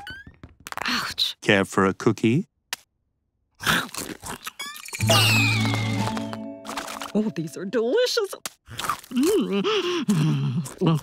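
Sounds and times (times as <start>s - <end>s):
crunchy cookie bite and chewing: 3.6s - 5.8s, 8.6s - 11.0s.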